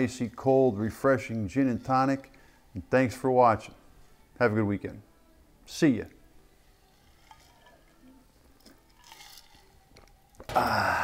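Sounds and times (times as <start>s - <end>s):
man drinking from metal tumbler: 6.9s - 11.0s.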